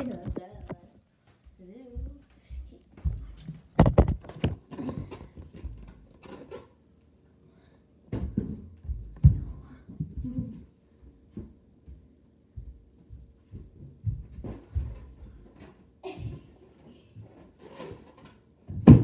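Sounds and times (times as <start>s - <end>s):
footsteps on floor: 0.1s - 6.1s, 8.2s - 17.5s.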